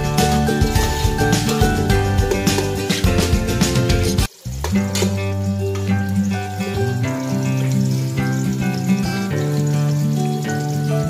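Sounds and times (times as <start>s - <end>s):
background music: 0.0s - 11.0s
onions sizzling in hot oil: 0.0s - 11.0s.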